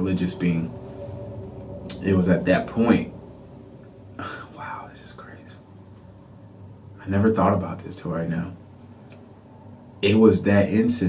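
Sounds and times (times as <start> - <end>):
man whispering: 4.2 - 5.7.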